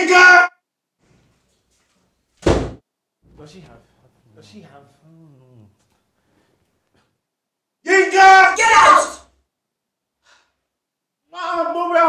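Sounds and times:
loud bang on a door: 2.4s - 2.8s.

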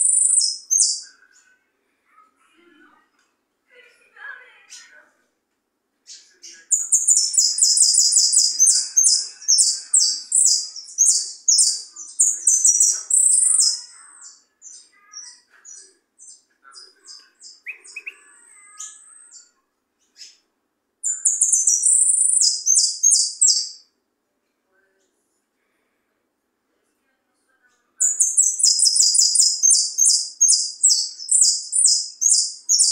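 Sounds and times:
finch singing high chirps: 0.0s - 1.1s, 6.1s - 20.4s, 21.0s - 23.9s, 28.0s - 32.9s.

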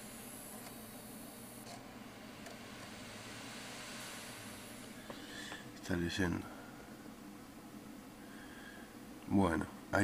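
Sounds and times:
desktop computer hum and hiss: 0.0s - 10.0s.

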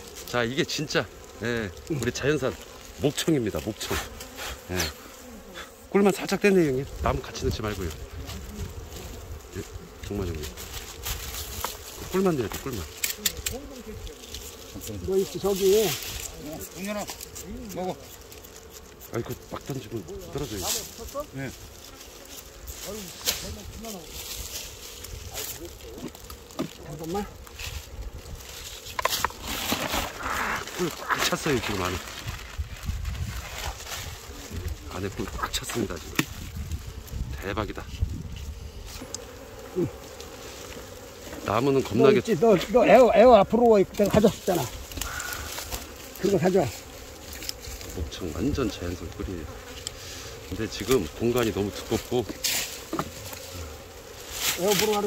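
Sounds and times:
bees buzzing: 0.0s - 55.0s.

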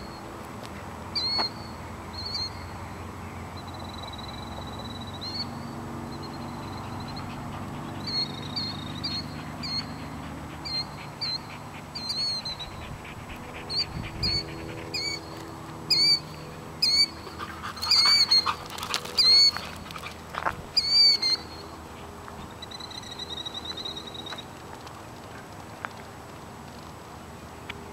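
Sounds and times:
birds calling: 0.0s - 25.9s.

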